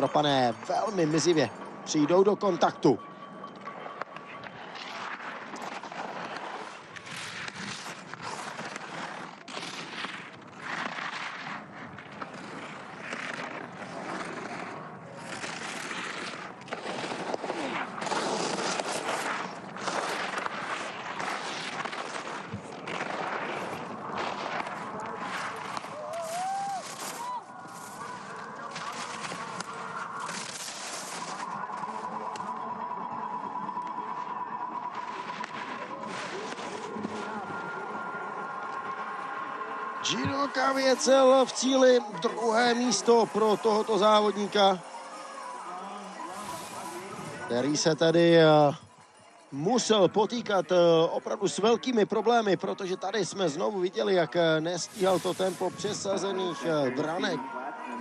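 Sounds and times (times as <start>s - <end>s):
skis scraping on icy snow: 0.0s - 3.0s, 4.2s - 58.0s.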